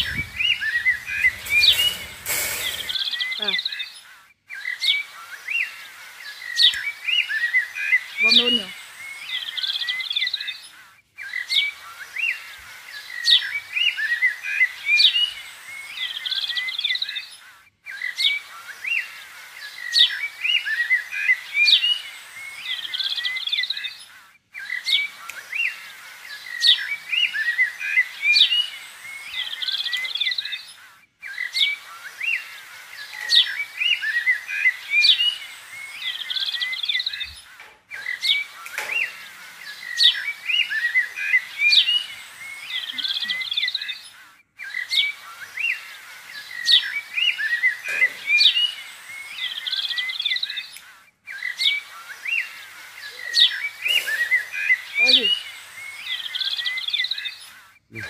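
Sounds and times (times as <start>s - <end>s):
birds chirping and twittering: 0.0s - 58.0s.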